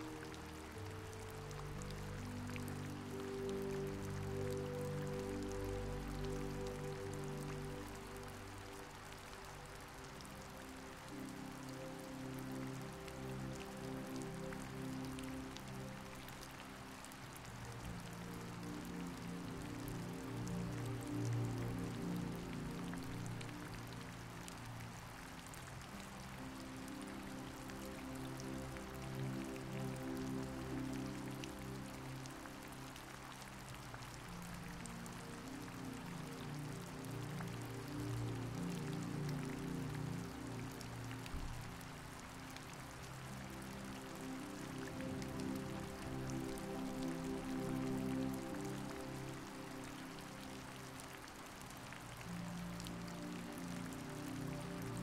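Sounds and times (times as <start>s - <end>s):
soft slow background music: 0.0s - 55.0s
steady rain: 0.0s - 55.0s.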